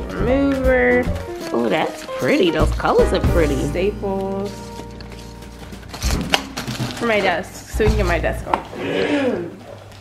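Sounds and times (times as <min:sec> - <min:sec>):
bubble wrap crackling: 0:00.0 - 0:08.3.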